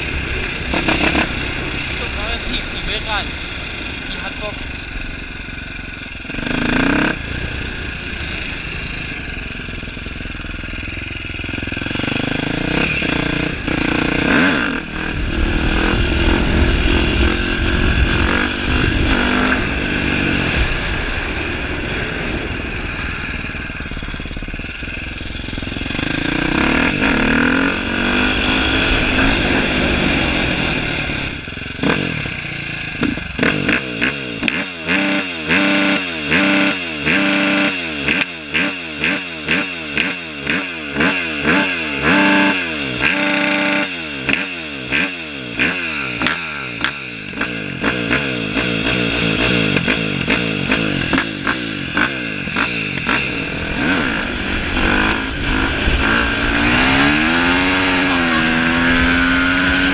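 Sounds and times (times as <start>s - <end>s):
motocross bike engine revving: 0.0s - 59.9s.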